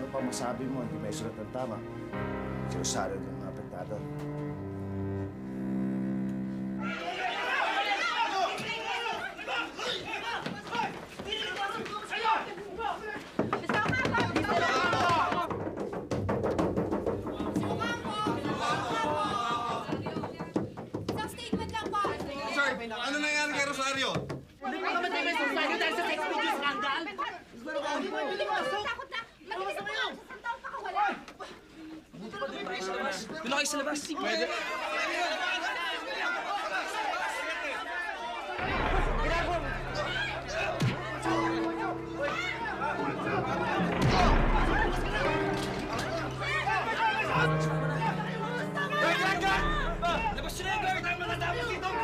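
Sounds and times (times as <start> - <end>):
overlapping voices in a scuffle: 6.8 - 15.6, 17.2 - 23.0, 24.5 - 52.0
people talking over one another: 6.8 - 15.6, 17.2 - 52.0.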